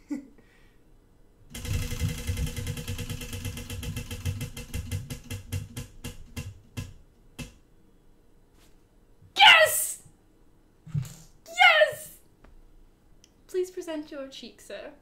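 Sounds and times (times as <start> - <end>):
prize wheel clicking: 1.5 - 6.4.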